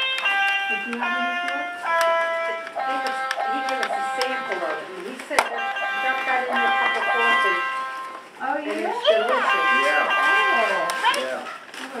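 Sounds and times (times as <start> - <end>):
toy electric guitar electronic note: 0.0 - 8.2, 9.1 - 11.4.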